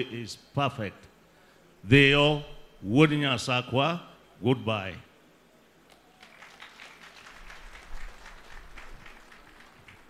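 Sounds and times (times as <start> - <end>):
audience applauding: 5.9 - 10.0.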